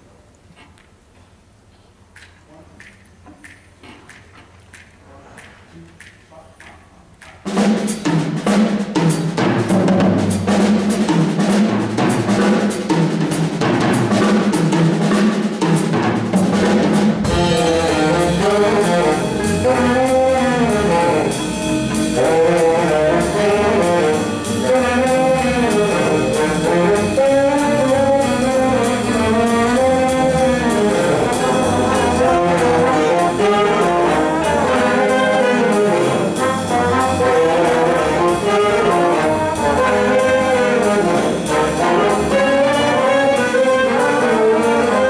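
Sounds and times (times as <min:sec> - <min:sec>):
jazz big band playing: 0:07.0 - 0:45.0
drums and cymbals: 0:07.2 - 0:45.0
horns playing wavering melody: 0:17.2 - 0:45.0.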